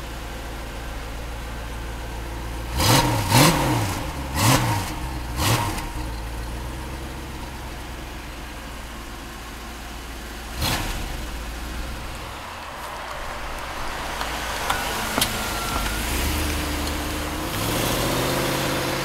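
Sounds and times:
car engine idling and revving: 0.0s - 19.0s.

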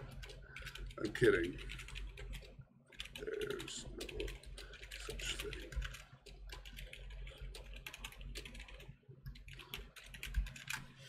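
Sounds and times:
typing on computer keyboard: 0.0s - 10.9s.

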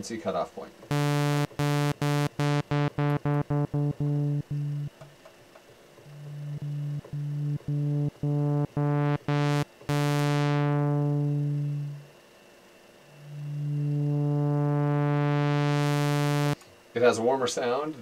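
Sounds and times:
low synthesizer note: 0.9s - 4.9s, 6.2s - 12.1s, 13.2s - 16.6s.

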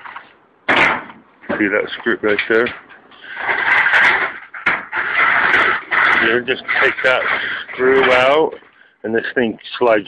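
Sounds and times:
sheet metal scraping: 0.0s - 8.8s.

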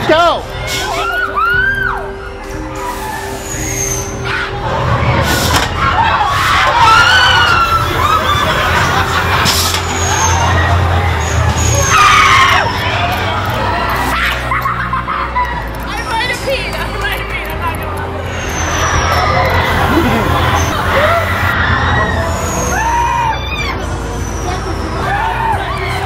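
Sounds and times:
low drone with music: 0.0s - 26.0s
high gliding cries and voices: 6.1s - 26.0s.

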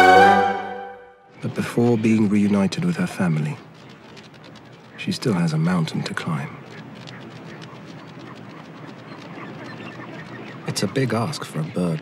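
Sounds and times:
penguin colony calling: 1.4s - 12.0s.

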